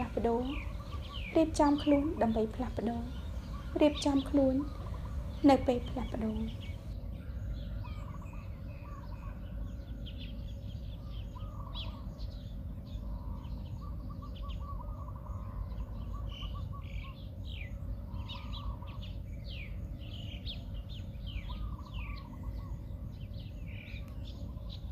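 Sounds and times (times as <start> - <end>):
low steady rumble: 0.0 - 8.7
birds chirping: 0.0 - 24.9.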